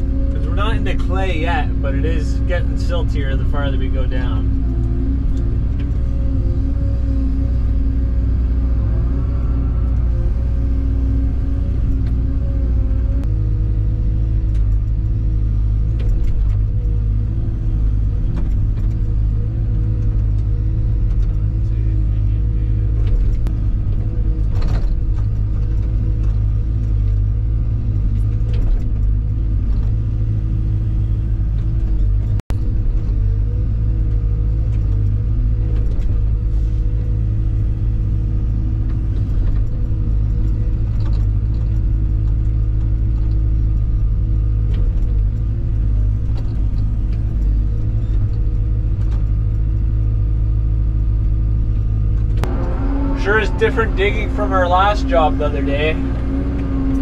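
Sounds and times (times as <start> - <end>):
excavator engine and hydraulics: 0.0 - 57.0.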